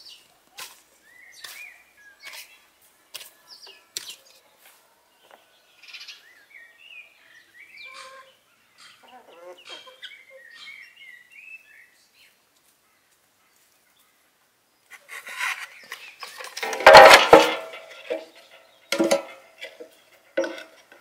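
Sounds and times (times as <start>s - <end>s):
birds chirping: 5.2s - 14.2s, 14.8s - 21.0s
wooden kindling clattering: 15.2s - 21.0s.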